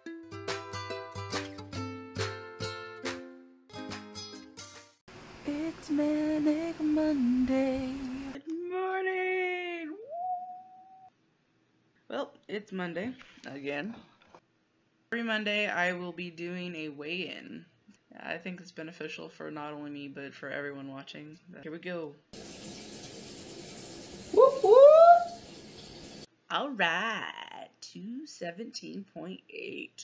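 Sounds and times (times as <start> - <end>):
woman hooting: 9.7 - 11.1, 24.3 - 25.4.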